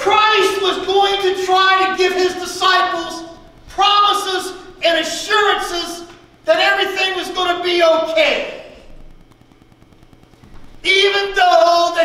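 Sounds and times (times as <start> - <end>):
man preaching: 0.0 - 8.9, 10.8 - 12.0
hall echo: 0.0 - 9.1, 10.4 - 12.0.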